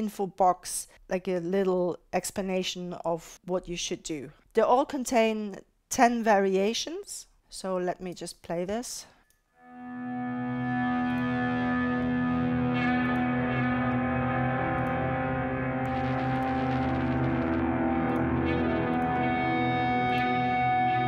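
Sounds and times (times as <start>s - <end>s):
feedback guitar held tones: 9.6s - 21.0s
high tone: 9.6s - 21.0s.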